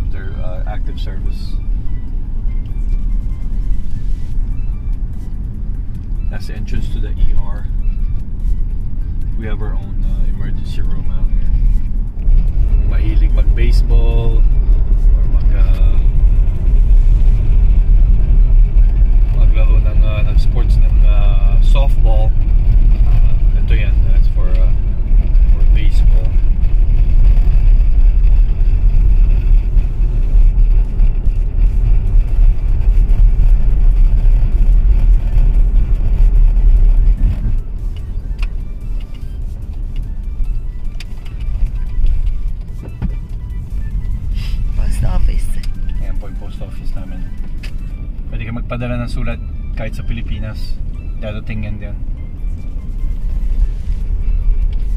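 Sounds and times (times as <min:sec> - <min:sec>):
car road and engine rumble: 0:00.0 - 0:54.9.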